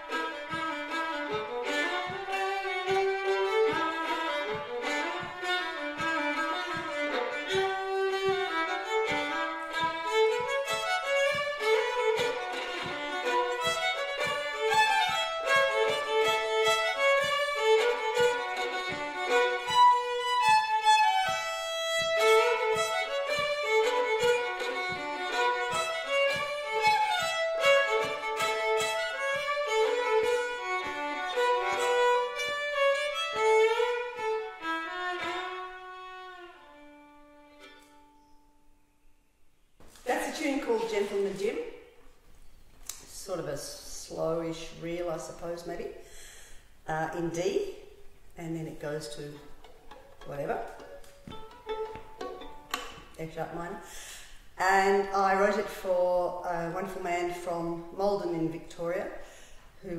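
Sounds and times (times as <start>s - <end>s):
low tapping keeping time: 0.0s - 38.0s, 48.6s - 53.6s
solo fiddle playing a reel: 0.0s - 38.3s, 49.4s - 53.7s.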